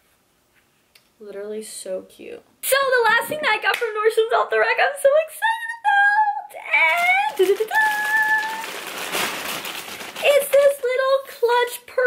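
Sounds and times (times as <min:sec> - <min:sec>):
paper and plastic rustling: 0:06.8 - 0:11.2.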